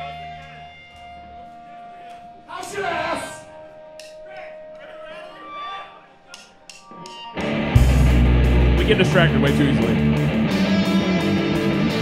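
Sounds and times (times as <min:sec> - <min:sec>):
rock band playing loud: 0:07.4 - 0:12.0.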